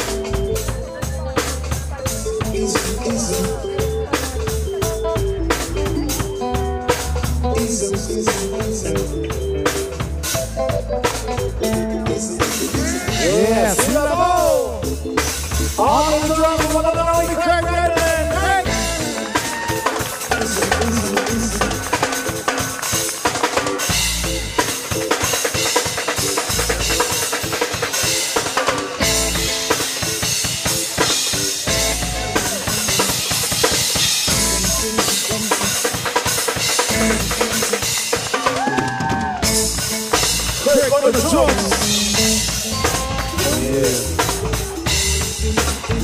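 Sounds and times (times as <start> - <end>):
reggae band playing: 0.0 - 46.0
person speaking: 13.1 - 14.8, 43.3 - 44.5.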